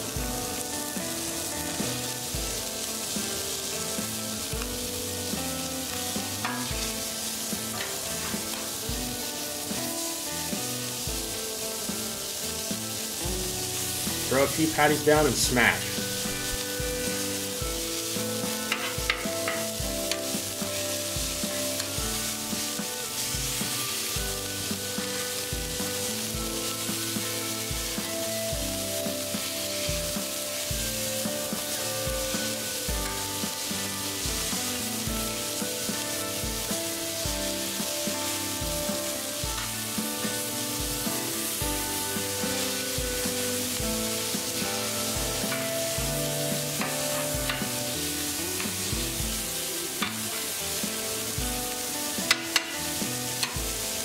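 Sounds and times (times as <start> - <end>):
background music with steady beat: 0.0 - 54.0
meat patties sizzling on griddle: 0.0 - 54.0.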